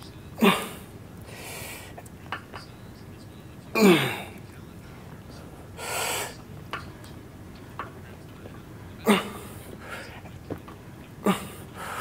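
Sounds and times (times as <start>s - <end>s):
man grunting: 0.4s - 0.9s, 3.8s - 4.3s, 9.0s - 9.6s, 11.2s - 12.0s
man breathing: 1.2s - 2.0s, 5.4s - 6.4s, 9.3s - 10.3s, 11.3s - 12.0s.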